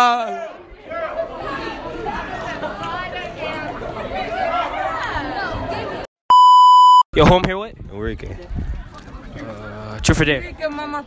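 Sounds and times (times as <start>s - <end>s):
voices talking over one another: 0.0s - 6.0s
loud electronic beep: 6.3s - 7.1s.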